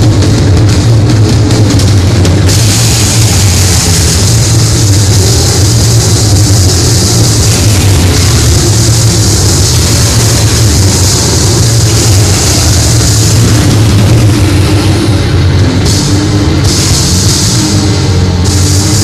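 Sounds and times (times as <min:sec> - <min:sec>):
distorted guitar and bass noise: 0:00.0 - 0:19.0
low drone: 0:00.0 - 0:19.0
thick hiss: 0:02.5 - 0:19.0.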